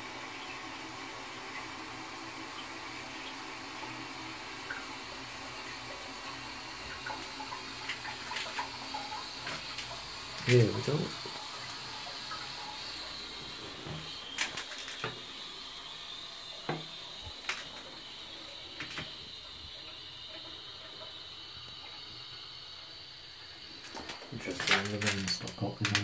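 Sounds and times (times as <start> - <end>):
toilet cistern refilling: 0.0 - 26.0.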